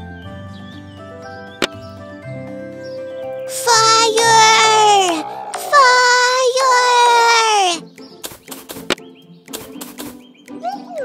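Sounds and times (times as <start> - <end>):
cartoon bird calls: 3.5 - 7.8
falling chirps: 3.5 - 7.8.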